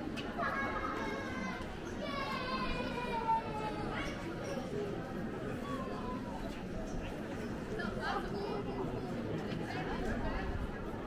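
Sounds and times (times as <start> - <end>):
general chatter: 0.0 - 11.0
children calling out: 0.4 - 4.3.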